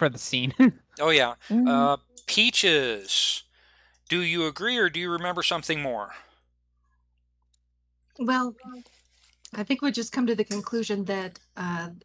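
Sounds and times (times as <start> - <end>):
man's voice: 0.0 - 3.4, 4.1 - 6.2.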